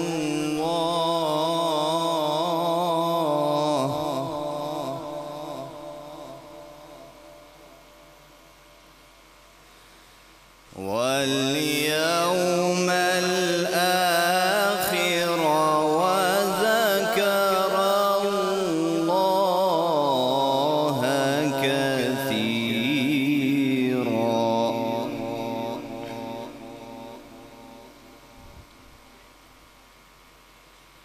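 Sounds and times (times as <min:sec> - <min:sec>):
man reciting melodically: 0:00.0 - 0:07.5, 0:10.7 - 0:28.4
faint hum: 0:00.0 - 0:31.0.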